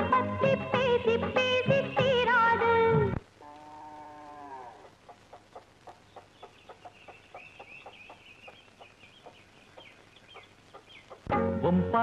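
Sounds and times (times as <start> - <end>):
hen clucking: 3.5 - 11.4
high chirping peeps: 5.9 - 11.3.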